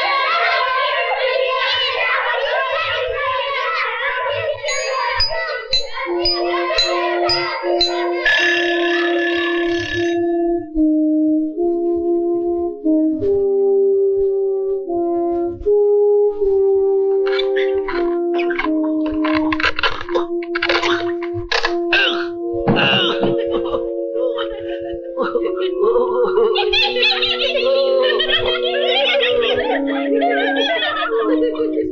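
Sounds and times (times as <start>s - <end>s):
alarm clock bell ringing: 4.6s - 10.2s
held note of film music: 4.6s - 31.9s.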